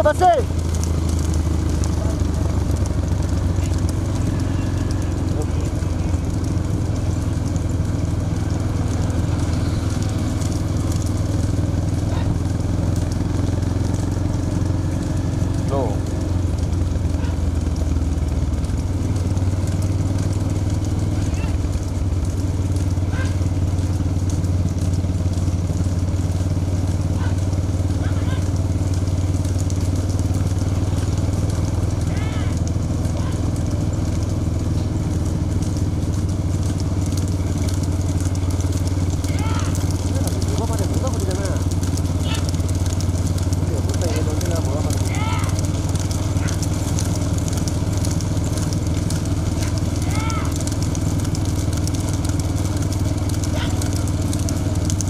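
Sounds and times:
motorcycle engines running: 0:00.0 - 0:55.0
road and wind noise: 0:00.0 - 0:55.0
voices calling out: 0:00.0 - 0:55.0.

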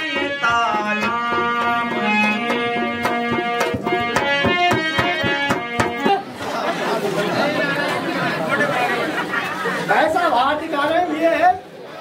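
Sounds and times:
melody over tabla beats: 0:00.0 - 0:06.3
crowd chatter: 0:05.0 - 0:12.0.

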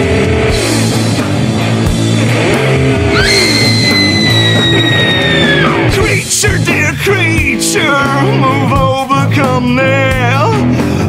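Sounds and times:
garage rock band playing: 0:00.0 - 0:11.0
high sliding guitar note: 0:02.2 - 0:06.0.

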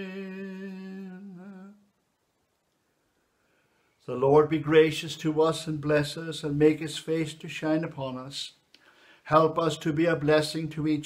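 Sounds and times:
man singing a hymn note: 0:00.0 - 0:01.9.

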